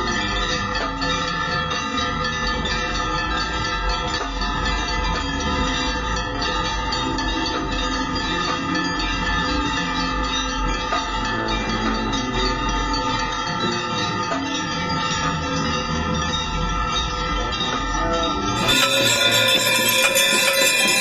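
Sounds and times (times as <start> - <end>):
many bells ringing: 0.0 - 21.0.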